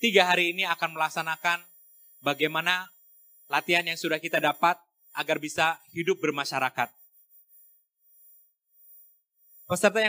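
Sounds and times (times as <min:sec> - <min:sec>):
faint steady tone: 0:00.0 - 0:10.0.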